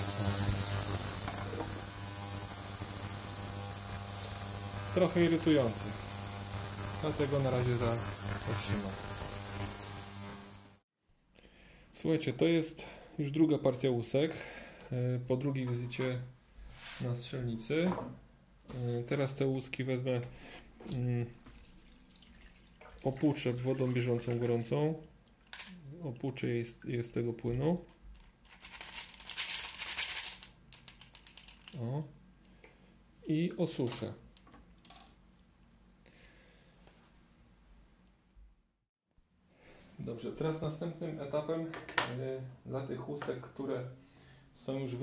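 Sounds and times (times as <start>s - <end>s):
ultrasonic cleaner buzzing hum: 0.0s - 10.8s
brass cases rattling in plastic basket: 28.4s - 31.8s.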